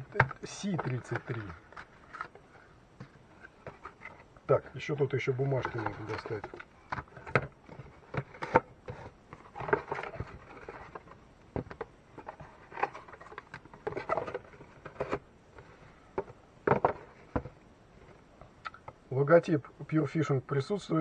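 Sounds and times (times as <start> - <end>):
paper rustling: 0.0 - 11.2.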